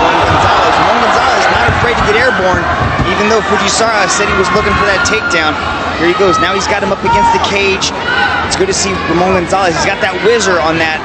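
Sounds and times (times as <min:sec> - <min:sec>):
man's voice: 0:00.0 - 0:07.9, 0:08.5 - 0:11.0
crowd noise: 0:00.0 - 0:11.0.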